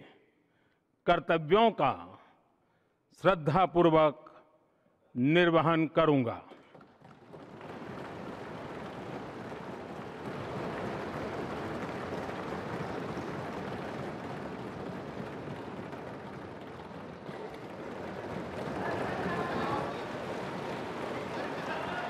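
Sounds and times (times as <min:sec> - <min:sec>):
applause: 0:06.5 - 0:22.0
crowd noise: 0:07.0 - 0:22.0.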